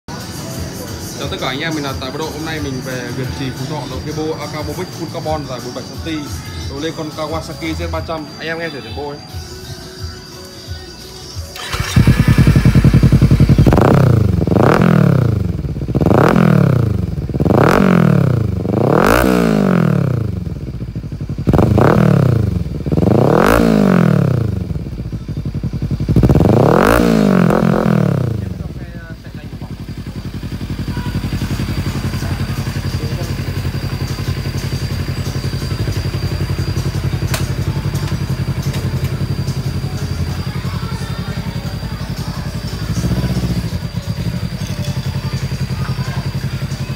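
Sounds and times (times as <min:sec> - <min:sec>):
motorcycle engine revving: 0:11.5 - 0:46.9.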